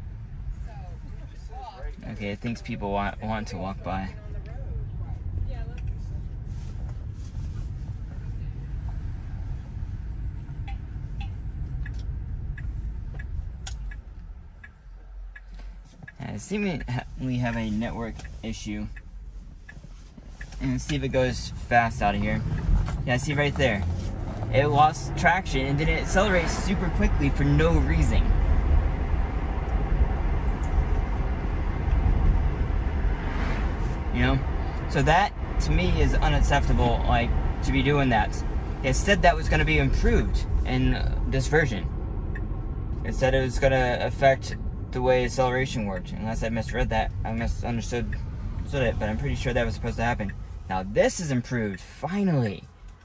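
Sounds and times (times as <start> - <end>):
road and tyre rumble in car: 0.0 - 53.0
turn signal ticking: 0.0 - 53.0.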